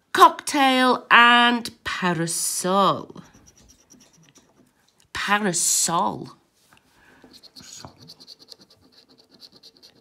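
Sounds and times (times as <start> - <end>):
coin scraping a scratchcard: 7.4 - 10.0.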